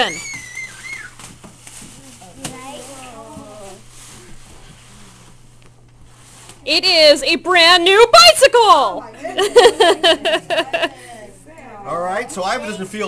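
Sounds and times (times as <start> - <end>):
wrapping paper ripping: 0.2 - 5.4.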